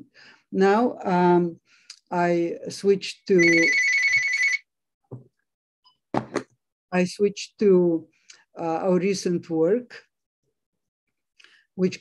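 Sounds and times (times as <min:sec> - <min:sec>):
warbling telephone ring: 0:03.4 - 0:04.6.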